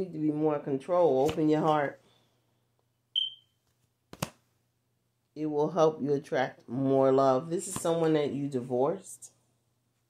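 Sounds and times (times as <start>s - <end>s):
high electronic beep: 3.2s - 3.4s.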